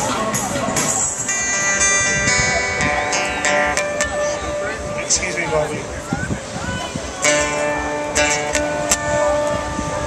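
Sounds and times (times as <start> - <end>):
amplified guitar music: 0.0 - 10.0
crowd chatter: 0.0 - 10.0.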